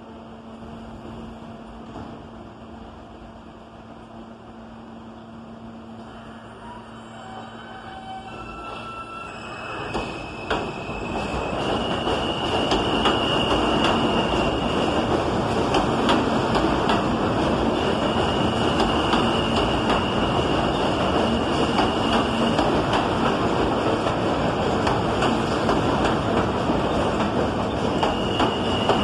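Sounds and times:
train wheels rumbling on rail: 0:00.0 - 0:29.0.

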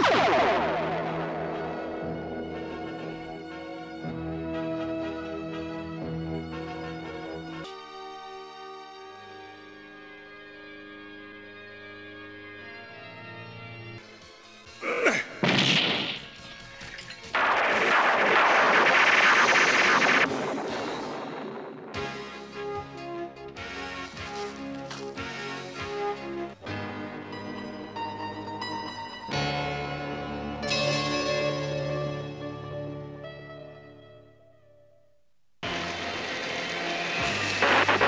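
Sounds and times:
dense crackling hiss: 0:35.6 - 0:38.0
heavy rain: 0:35.6 - 0:38.0.

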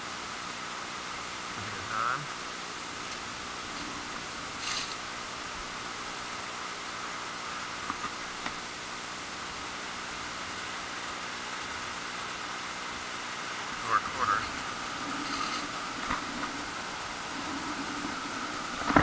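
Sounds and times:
beach background hiss: 0:00.0 - 0:19.0.

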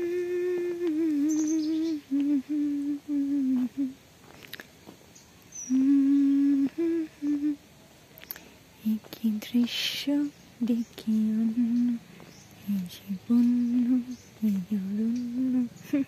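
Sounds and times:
woman humming: 0:00.0 - 0:04.0, 0:05.6 - 0:07.6, 0:08.8 - 0:12.0, 0:12.7 - 0:16.0.

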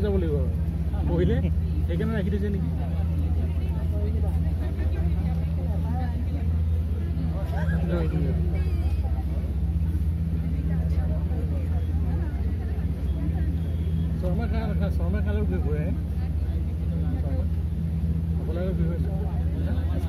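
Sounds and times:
boat engine droning: 0:00.0 - 0:20.0
people chattering: 0:00.0 - 0:20.0.

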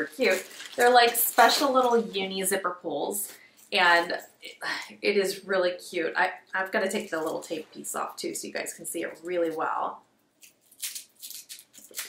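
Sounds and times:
tape peeling off fabric: 0:10.4 - 0:12.0.

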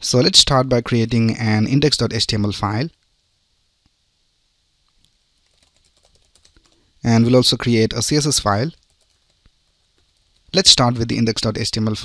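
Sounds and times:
keyboard typing: 0:05.4 - 0:06.8, 0:08.7 - 0:10.6.

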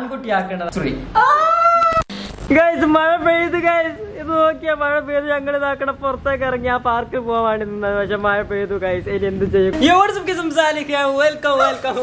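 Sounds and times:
person speaking: 0:09.4 - 0:12.0.

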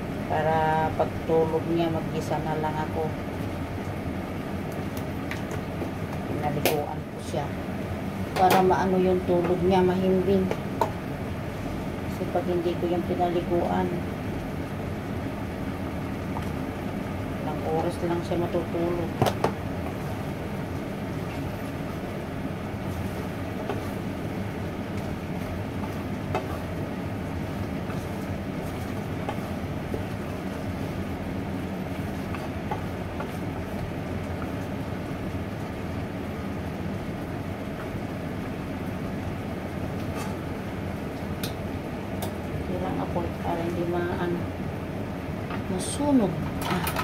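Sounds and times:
range hood fan humming: 0:00.0 - 0:47.0
wooden spatula stirring in pan: 0:15.5 - 0:41.3.

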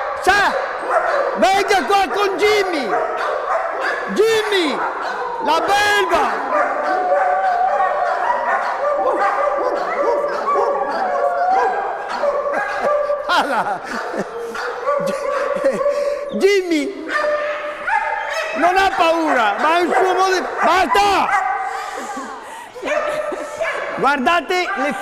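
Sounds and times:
dogs barking and yelping: 0:00.0 - 0:25.0
dog whining: 0:06.5 - 0:13.2.

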